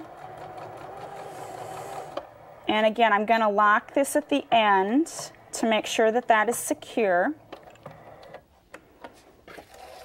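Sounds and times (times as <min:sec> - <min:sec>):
sewing machine running: 0:00.0 - 0:03.1, 0:09.6 - 0:10.0.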